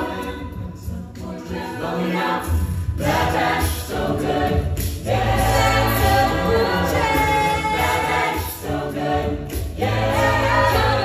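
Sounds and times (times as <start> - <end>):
a cappella group singing: 0.0 - 11.0.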